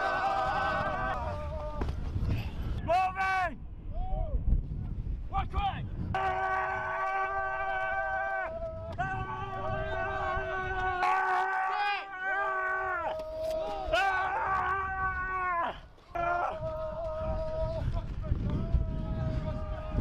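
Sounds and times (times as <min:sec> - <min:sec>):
men yelling war cries: 0:00.0 - 0:01.8, 0:06.2 - 0:20.0.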